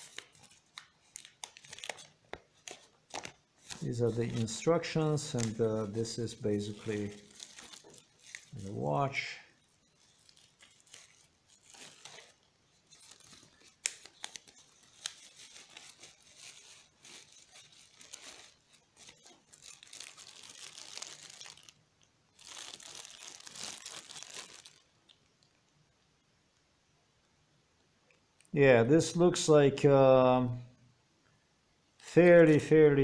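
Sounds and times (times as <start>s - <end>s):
plastic bag and bubble wrap crinkling: 0.0s - 25.2s, 32.0s - 33.0s.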